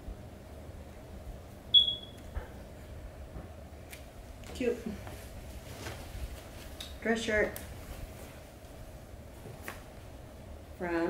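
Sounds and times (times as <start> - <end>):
short high-pitched beep: 1.8 - 2.2.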